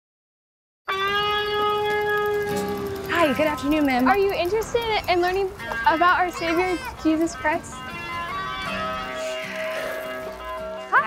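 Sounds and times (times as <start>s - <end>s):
lower drone note: 0.9s - 4.0s
held drone note: 0.9s - 10.9s.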